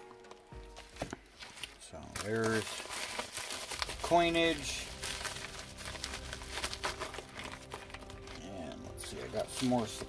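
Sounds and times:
packaging rustling and crinkling: 0.0 - 10.0.

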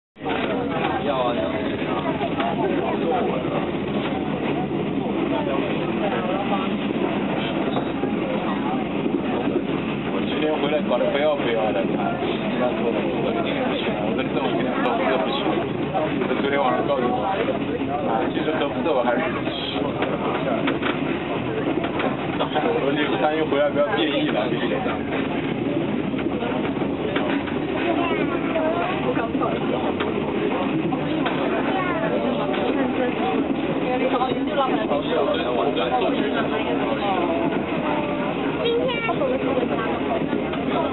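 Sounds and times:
passengers talking faintly: 0.2 - 40.9
train coach rolling on rails: 0.2 - 40.9.

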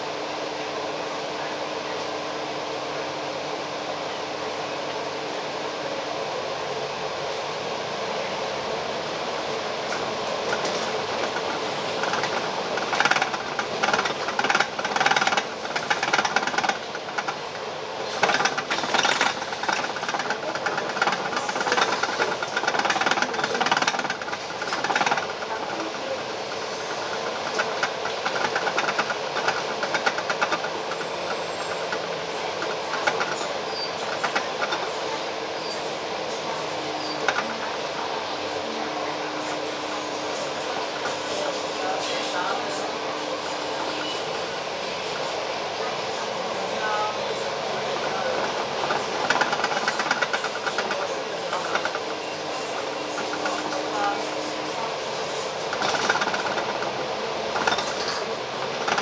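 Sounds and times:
bus engine and road drone: 0.0 - 59.0
fast rattling and clatter: 9.9 - 35.8, 47.4 - 59.0.

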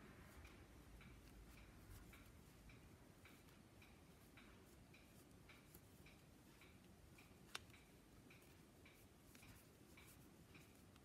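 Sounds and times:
faint even ticking: 0.0 - 11.0.

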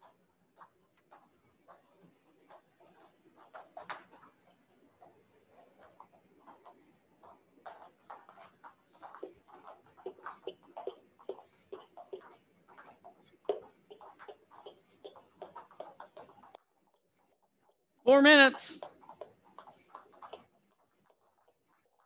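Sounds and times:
jump ropes slapping floor mats: 0.0 - 16.6.

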